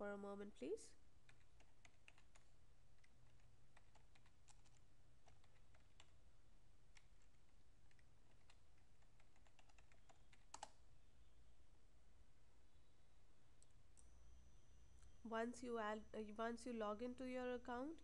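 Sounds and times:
computer keyboard keystrokes: 0:01.3 - 0:06.2, 0:06.9 - 0:10.8.

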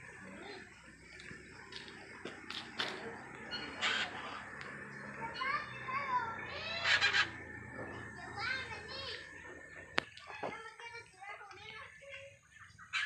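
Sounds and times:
parrots chattering calls: 0:00.3 - 0:11.0, 0:12.4 - 0:13.0.

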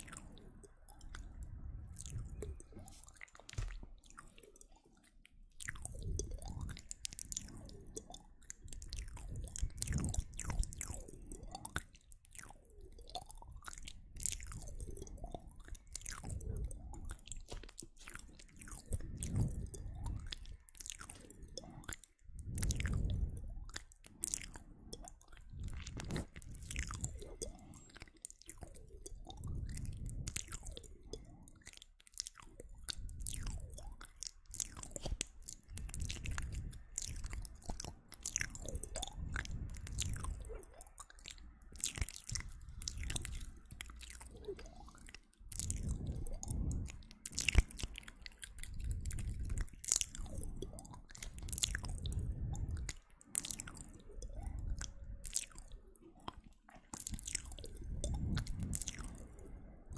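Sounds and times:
wet mouth clicks and smacks: 0:00.0 - 0:59.9.

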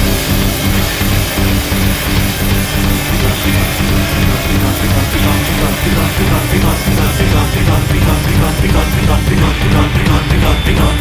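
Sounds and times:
loud dense band music: 0:00.0 - 0:11.0.

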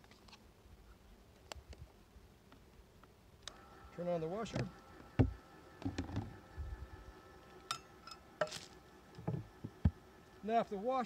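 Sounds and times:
small motor whine: 0:03.4 - 0:11.0.

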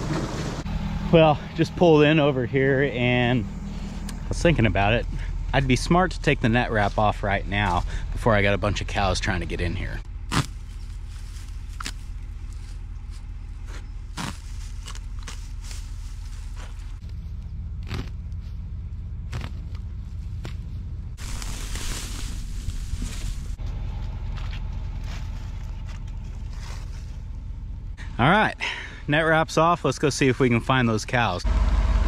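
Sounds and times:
steady low rumble: 0:00.0 - 0:32.0
plastic wrap rustling and scraping: 0:14.1 - 0:17.0, 0:21.2 - 0:23.6, 0:25.2 - 0:27.2.

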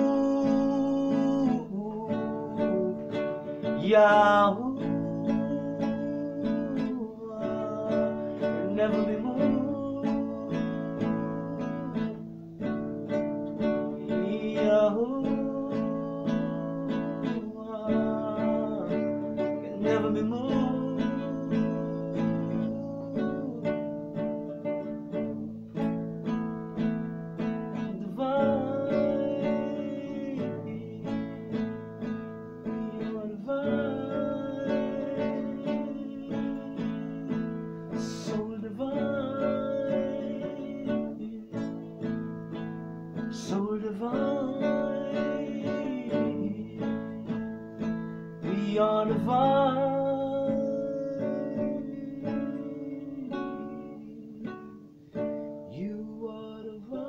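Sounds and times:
acoustic guitar strumming: 0:00.0 - 0:57.0
man singing: 0:00.0 - 0:57.0.

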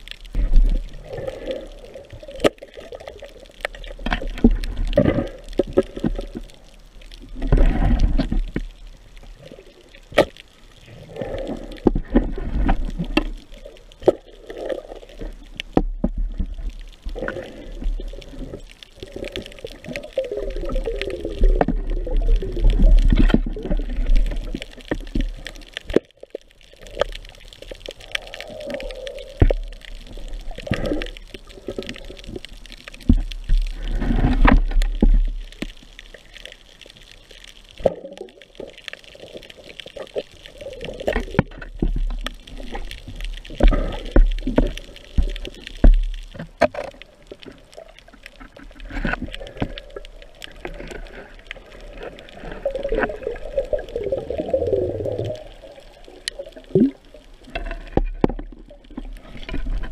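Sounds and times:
water rushing and gurgling underwater: 0:00.0 - 0:59.9.

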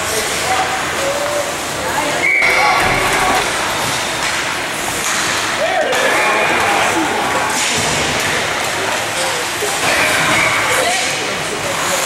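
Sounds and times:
ice rink crowd noise: 0:00.0 - 0:12.0.

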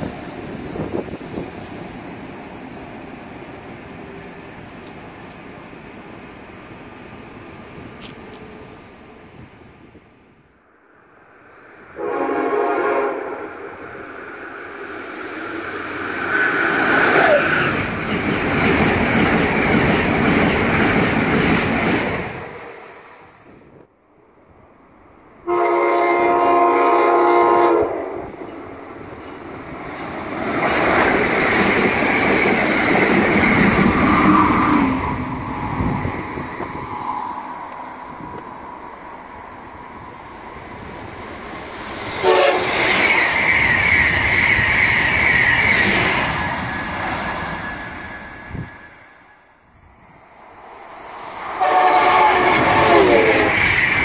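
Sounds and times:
trains passing at speed: 0:00.0 - 0:54.0
train horn: 0:12.0 - 0:13.6, 0:25.4 - 0:28.3, 0:42.2 - 0:42.8, 0:51.6 - 0:53.6.

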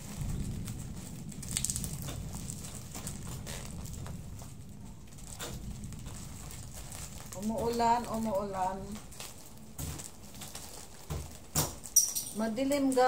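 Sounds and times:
steady low rumble: 0:00.0 - 0:11.5
plastic mailer bag crinkling: 0:00.0 - 0:13.0.

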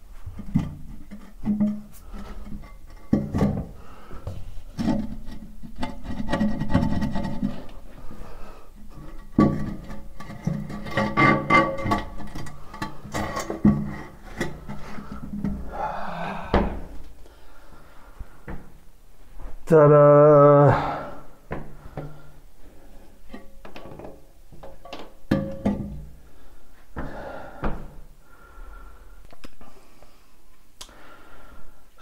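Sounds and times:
knocks and rubbing: 0:00.2 - 0:07.8, 0:08.8 - 0:15.7.

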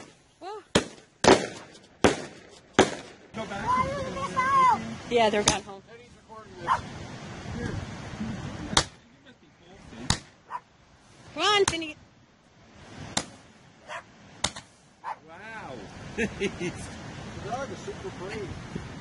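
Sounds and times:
fireworks bangs: 0:00.0 - 0:04.3
short yelping calls: 0:10.4 - 0:10.7, 0:13.8 - 0:14.1, 0:15.0 - 0:15.3.

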